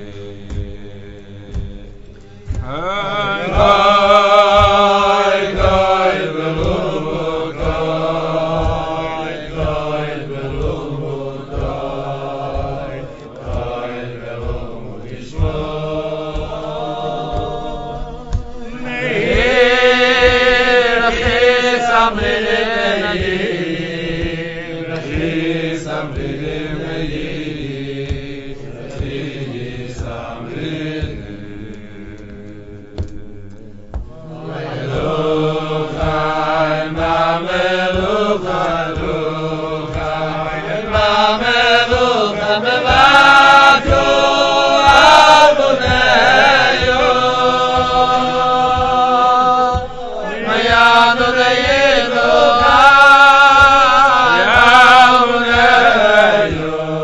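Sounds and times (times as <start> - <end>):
low rhythmic thumps: 0.0 - 57.0
voices singing wordless chant: 0.0 - 57.0.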